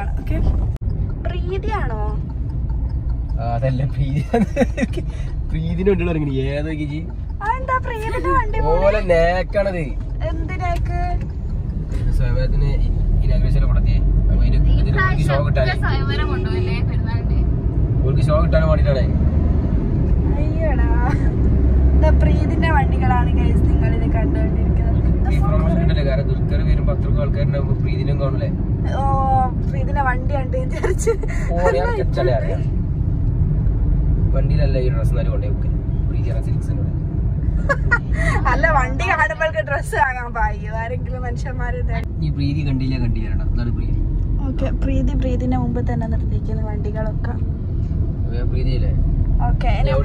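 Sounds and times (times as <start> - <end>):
car engine and road rumble: 0.0 - 50.0
people talking: 1.2 - 2.2, 28.9 - 32.6, 38.2 - 43.7, 44.4 - 47.4.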